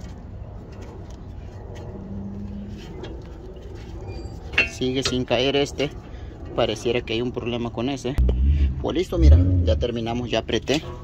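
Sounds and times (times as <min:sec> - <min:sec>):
low steady rumble: 0:00.0 - 0:10.9.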